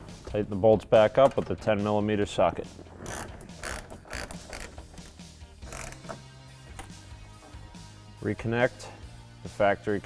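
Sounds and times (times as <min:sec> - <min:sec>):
hand ratchet clicking: 0:03.0 - 0:06.2.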